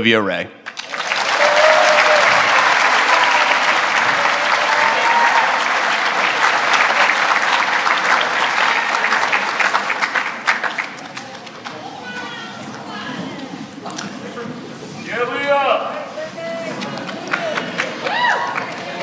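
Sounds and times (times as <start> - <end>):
audience applauding: 0.7 - 12.2, 16.8 - 19.0.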